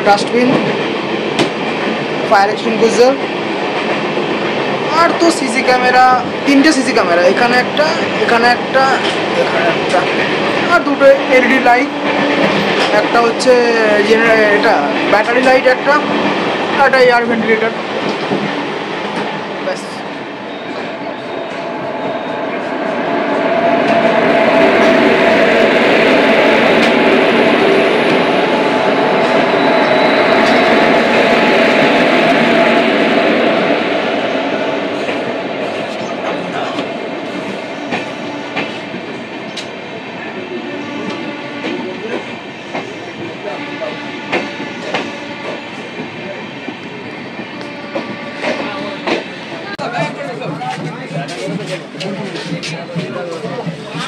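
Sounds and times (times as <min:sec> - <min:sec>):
train rushing at speed: 0:00.0 - 0:54.0.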